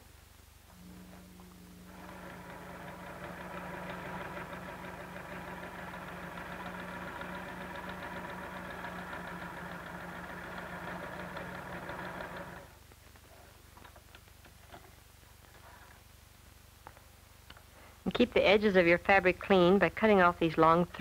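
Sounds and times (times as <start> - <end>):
sewing machine running: 0.8 - 12.8.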